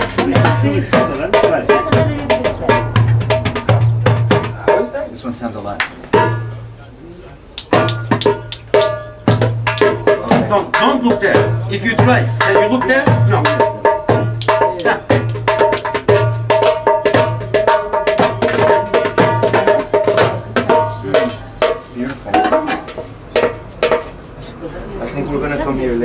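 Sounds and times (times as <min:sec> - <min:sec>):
hand drum strikes: 0:00.0 - 0:05.1, 0:05.8 - 0:06.6, 0:07.6 - 0:24.2
voices talking: 0:00.0 - 0:15.5, 0:18.9 - 0:26.0.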